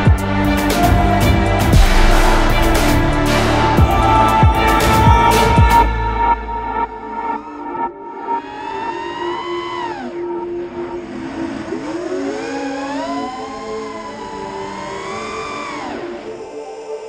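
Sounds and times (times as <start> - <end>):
background music: 0.0 - 17.0
quadcopter motors whining: 12.4 - 16.1.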